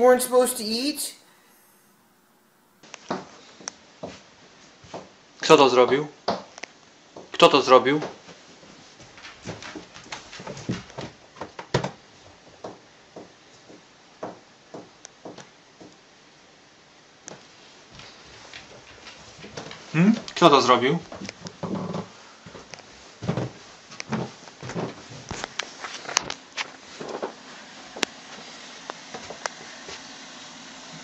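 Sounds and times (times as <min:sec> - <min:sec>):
dog paws on carpeted stairs: 0:08.0 - 0:16.0, 0:17.9 - 0:20.4, 0:21.1 - 0:27.4.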